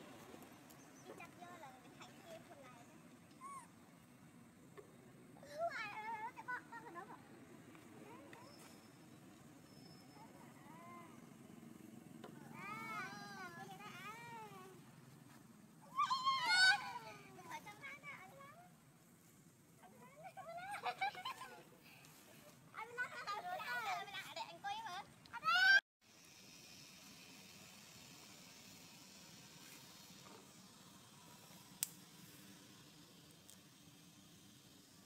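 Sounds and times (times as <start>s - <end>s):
macaques calling: 3.4s - 3.8s.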